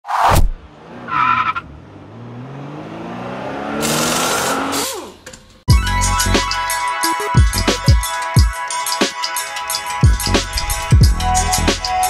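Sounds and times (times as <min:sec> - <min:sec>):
car engine revving: 0:00.5 - 0:05.6
music with heavy drum beat: 0:05.7 - 0:12.0.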